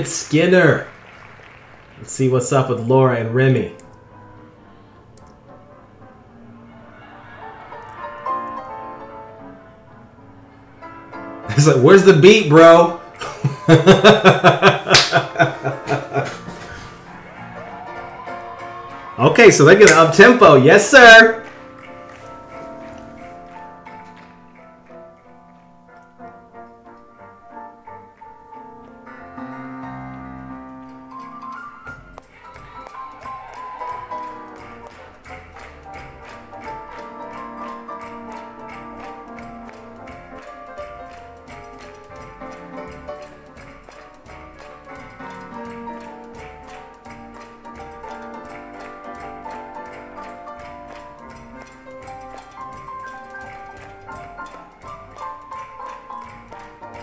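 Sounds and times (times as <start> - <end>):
piano: 0.0 - 57.0
jazz band playing swing: 33.4 - 57.0.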